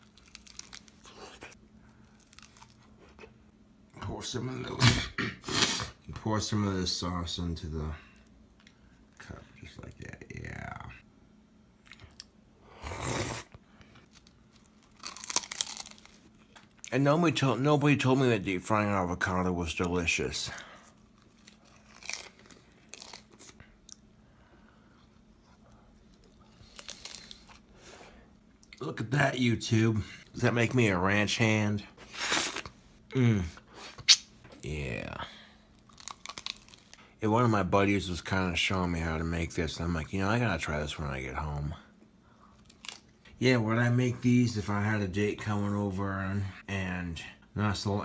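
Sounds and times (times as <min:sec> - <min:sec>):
biting and chewing food: 0:00.0 - 0:03.5, 0:11.8 - 0:12.4, 0:13.9 - 0:16.9, 0:20.8 - 0:24.1, 0:25.5 - 0:27.7, 0:35.6 - 0:37.0, 0:42.5 - 0:43.3.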